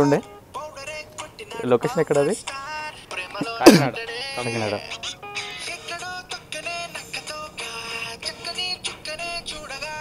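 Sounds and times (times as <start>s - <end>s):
song from phone speaker: 0.0s - 10.0s.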